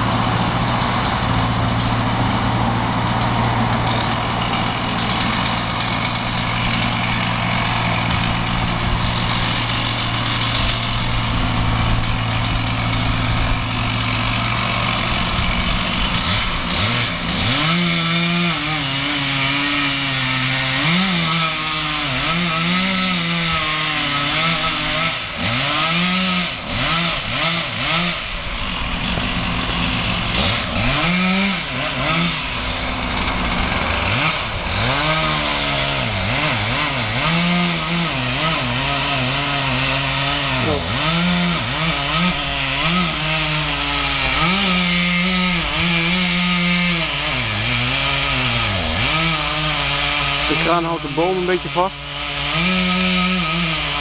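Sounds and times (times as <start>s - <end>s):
crane engine running: 0.0s - 52.3s
chainsaw cutting wood: 0.0s - 54.0s.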